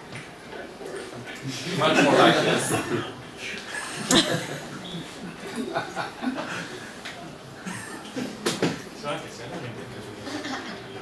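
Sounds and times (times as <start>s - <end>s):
light chuckling: 3.7s - 6.9s, 7.6s - 8.4s, 10.2s - 11.0s.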